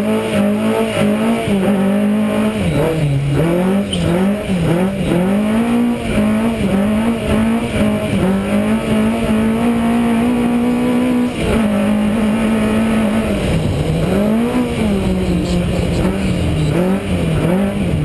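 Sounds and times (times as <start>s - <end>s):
rally car engine revving: 0.0s - 18.0s.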